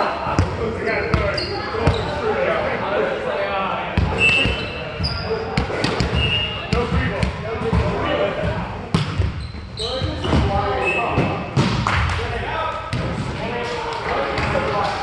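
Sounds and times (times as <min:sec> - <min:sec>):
players' voices: 0:00.0 - 0:15.0
shoes squeaking on court floor: 0:01.1 - 0:02.2, 0:04.1 - 0:06.9, 0:09.1 - 0:11.5
volleyball slaps: 0:05.5 - 0:08.0, 0:08.9 - 0:09.3, 0:11.2 - 0:12.3.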